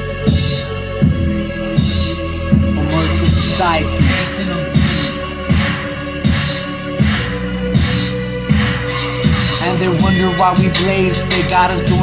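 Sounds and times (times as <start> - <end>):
deep kick drum: 0.3 - 10.9.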